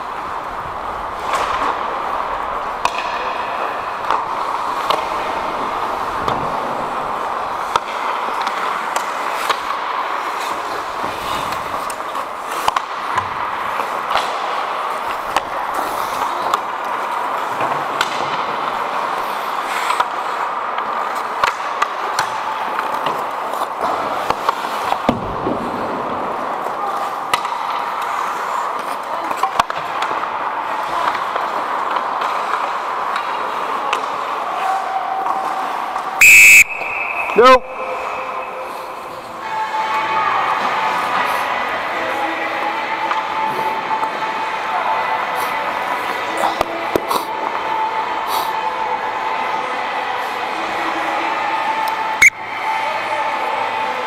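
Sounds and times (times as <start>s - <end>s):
skates scraping on ice: 0.0s - 36.2s, 36.8s - 51.8s
sticks and puck clacking: 0.0s - 54.0s
referee whistle blast: 36.2s - 38.7s.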